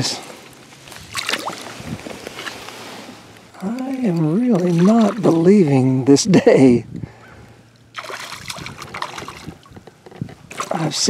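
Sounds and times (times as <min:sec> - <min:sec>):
fish splashing at water surface: 0:00.9 - 0:01.8, 0:04.2 - 0:05.5, 0:07.9 - 0:09.7, 0:10.5 - 0:11.0.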